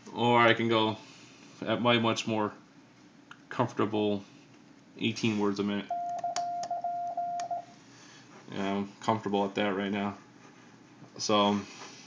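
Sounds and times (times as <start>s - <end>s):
morse code tone: 5.9s - 7.7s.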